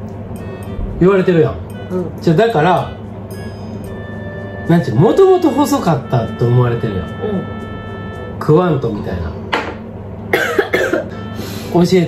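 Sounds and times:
person coughing: 10.3 - 11.2.

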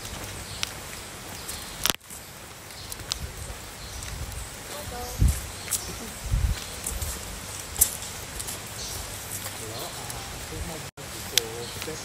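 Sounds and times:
open-air background: 0.0 - 12.0
footsteps thumping: 4.0 - 10.0.

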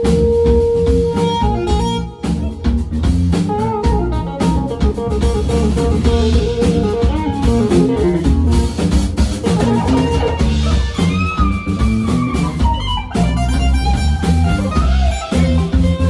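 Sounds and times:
jazz-funk band playing: 0.0 - 16.0
melodic lead line: 0.0 - 16.0.

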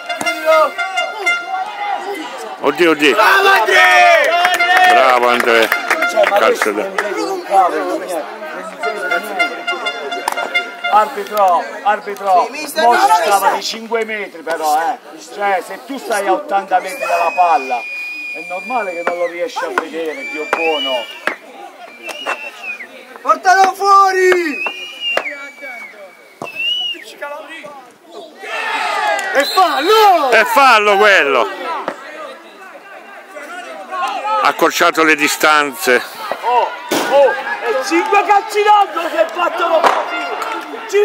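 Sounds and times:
referee whistle: 0.0 - 1.7, 16.8 - 22.9, 24.4 - 27.2, 29.3 - 30.3
spectators talking and calling out: 0.0 - 41.0.

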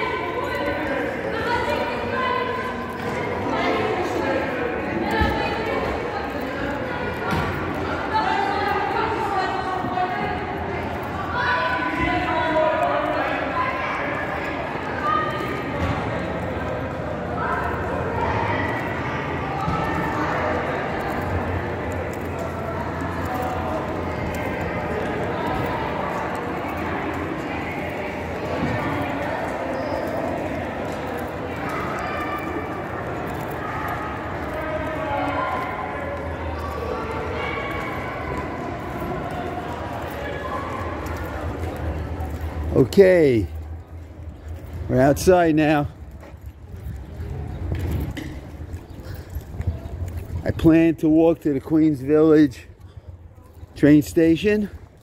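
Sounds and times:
echoing indistinct voices: 0.0 - 55.0.

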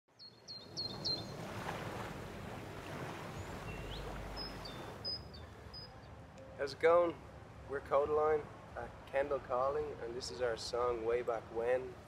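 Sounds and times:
small birds chirping: 0.1 - 1.4, 3.3 - 6.6
outdoor background noise: 0.1 - 12.0.

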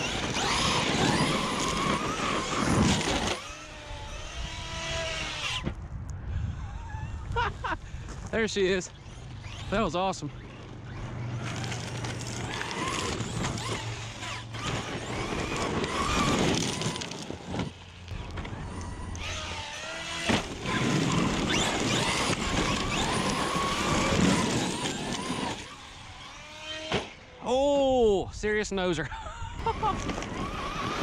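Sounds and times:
electric motor whine: 0.0 - 5.8, 8.9 - 27.4, 29.5 - 31.0
tyres on gravel and dirt: 0.0 - 6.0, 7.0 - 27.4, 29.6 - 31.0.

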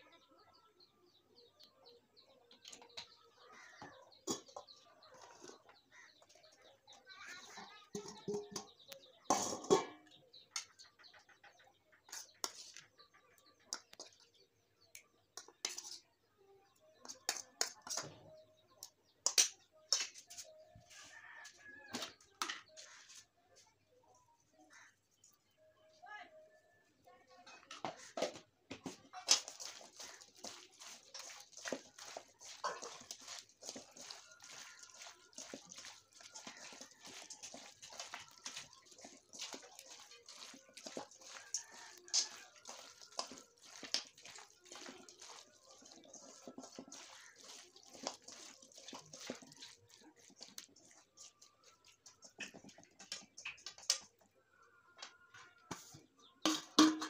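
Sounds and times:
small birds chirping: 0.0 - 56.6
steel bowl and spoon clatter: 2.5 - 16.1, 17.0 - 20.6, 27.4 - 54.2, 55.6 - 57.0
wet squelching of hand mixing meat: 29.1 - 54.1.

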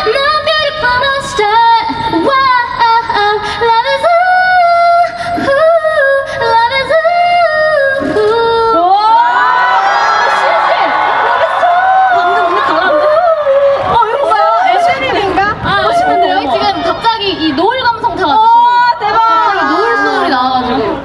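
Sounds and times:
woman singing into a microphone: 0.0 - 9.6, 10.4 - 21.0
audience cheering and screaming: 8.8 - 17.6.

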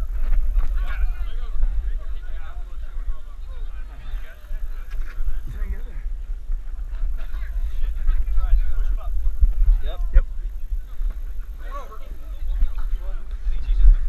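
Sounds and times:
wind rumble: 0.0 - 14.0.

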